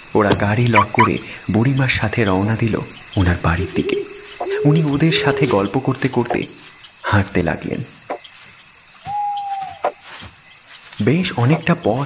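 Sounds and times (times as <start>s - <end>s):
owl hooting: 0.8s - 1.2s, 3.0s - 6.8s, 9.0s - 10.2s.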